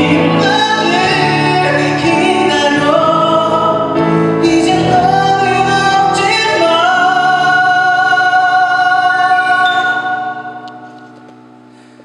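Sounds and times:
live band chords ringing: 0.0s - 12.0s.

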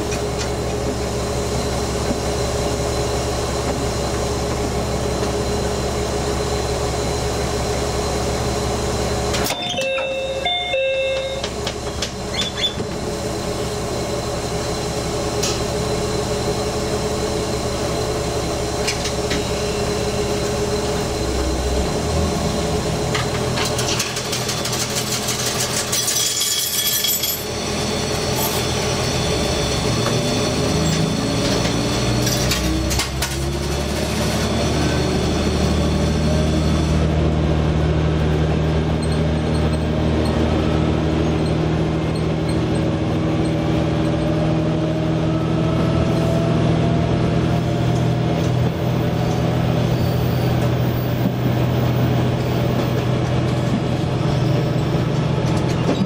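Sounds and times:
diesel railcar engine: 0.0s - 56.0s.

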